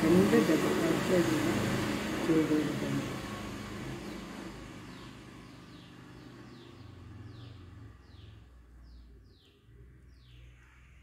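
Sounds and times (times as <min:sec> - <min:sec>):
passing vehicle: 0:00.0 - 0:09.1
faint bird chirps: 0:04.9 - 0:11.0.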